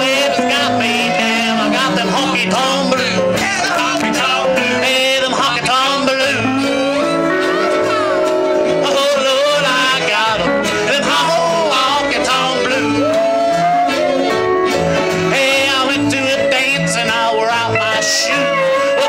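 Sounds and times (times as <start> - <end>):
country band playing: 0.0 - 19.0.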